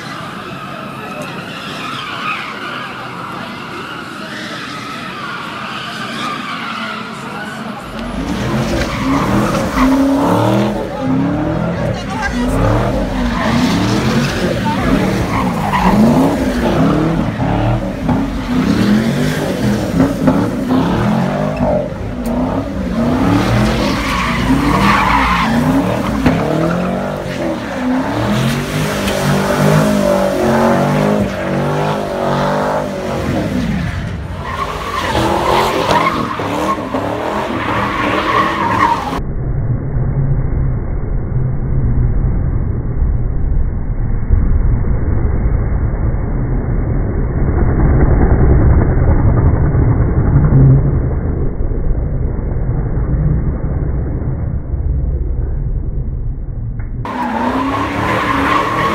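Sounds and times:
spectators talking and laughing: 0:00.0 - 0:37.5
tires squealing on pavement: 0:00.0 - 0:39.2, 0:57.1 - 0:58.9
car engine revving: 0:05.0 - 0:39.2, 0:57.0 - 0:58.9.

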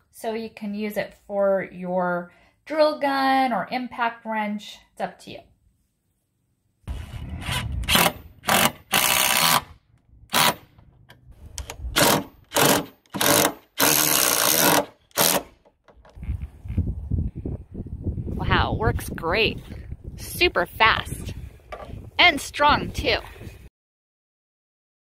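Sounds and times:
impact wrench bursts: 0:07.4 - 0:11.0.

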